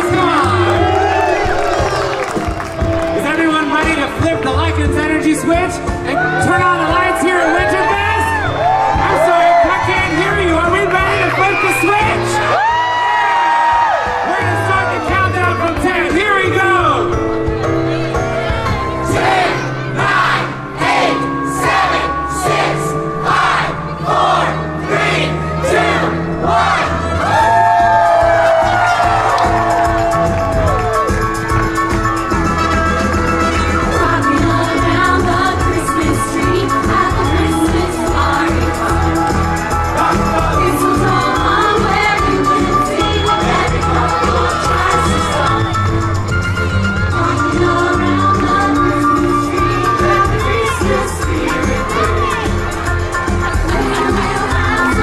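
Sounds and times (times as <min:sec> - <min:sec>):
audience cheering: 0:00.0 - 0:04.0, 0:06.2 - 0:15.1, 0:27.2 - 0:31.7
vocal group singing: 0:19.1 - 0:27.6, 0:33.7 - 0:46.2, 0:47.1 - 0:55.0.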